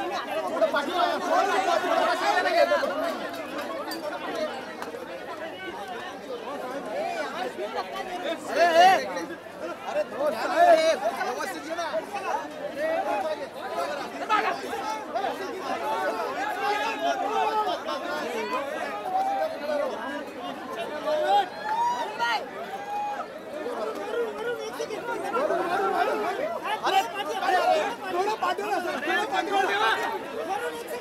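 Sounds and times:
crowd talking and calling out: 0:00.0 - 0:31.0
loud shouts: 0:20.8 - 0:31.0.

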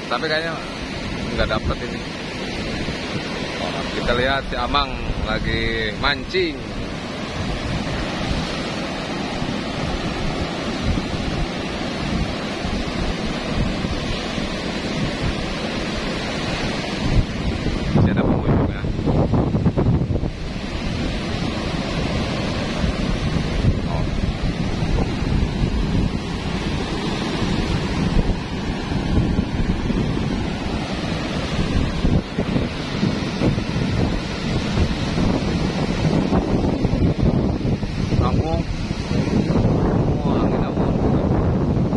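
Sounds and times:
ocean surf breaking: 0:00.0 - 0:41.9
wind buffeting microphone: 0:00.0 - 0:41.9.

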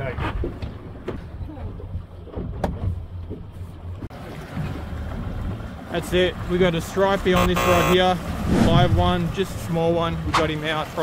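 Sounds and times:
boat engine running: 0:00.9 - 0:11.0
wind on microphone: 0:08.2 - 0:09.8.

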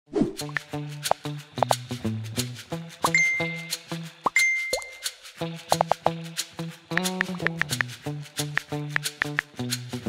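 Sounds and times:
light plucked background music: 0:00.3 - 0:10.0
bell-like ding: 0:03.1 - 0:03.7, 0:04.4 - 0:05.0.

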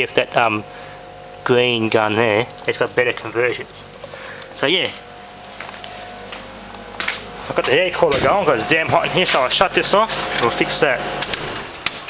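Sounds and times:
air cooler fan running: 0:00.0 - 0:12.0.

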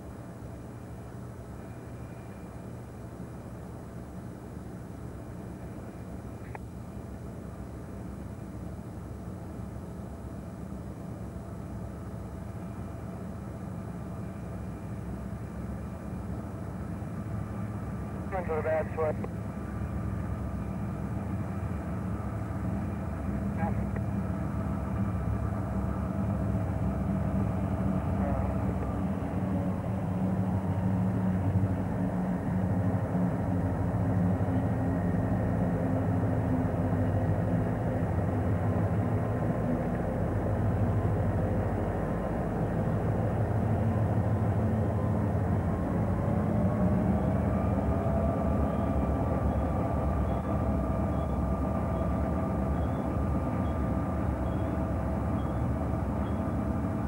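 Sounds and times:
diesel locomotive engine drone: 0:00.0 - 0:57.0.

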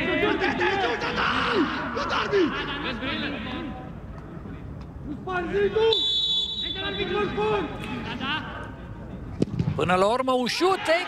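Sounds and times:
referee's whistle blast: 0:05.9 - 0:07.1.

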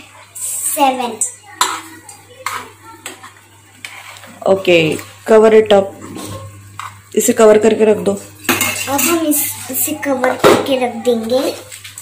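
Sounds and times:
metal spoon stirring noodles: 0:01.5 - 0:04.4.

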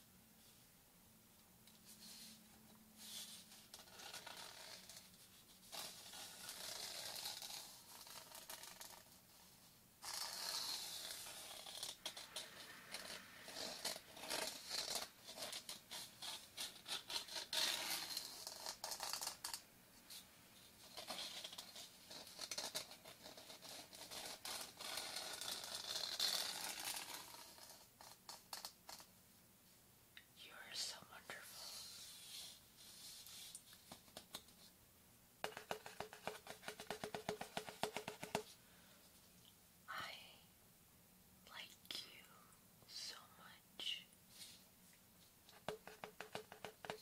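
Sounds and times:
person whispering: 0:30.2 - 0:32.1, 0:39.9 - 0:40.5, 0:41.4 - 0:44.2.

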